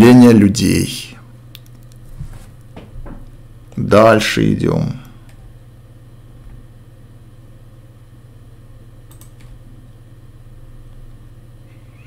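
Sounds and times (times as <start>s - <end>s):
computer electrical hum: 0.0s - 12.0s
computer mouse clicks: 1.5s - 2.0s, 9.1s - 9.6s.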